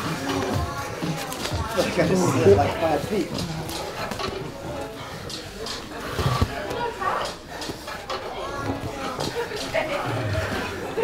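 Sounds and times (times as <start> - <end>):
grunts and effortful breaths: 1.8 - 11.0.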